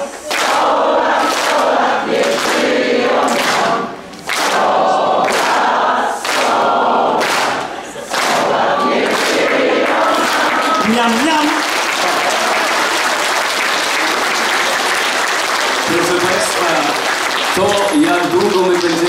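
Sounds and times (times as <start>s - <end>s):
voices singing in chorus: 0.0s - 11.0s
audience clapping along: 0.2s - 19.0s.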